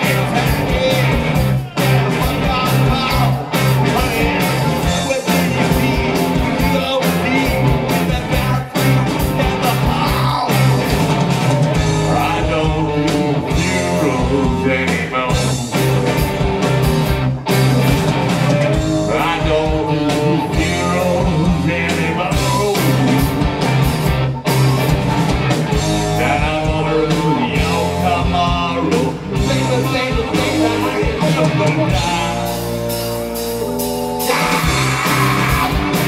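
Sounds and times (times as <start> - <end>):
man singing: 0.0 - 11.0, 11.8 - 15.8, 18.6 - 23.4, 25.8 - 32.9, 34.2 - 36.0
distorted electric guitars: 0.0 - 36.0
drums: 0.0 - 36.0.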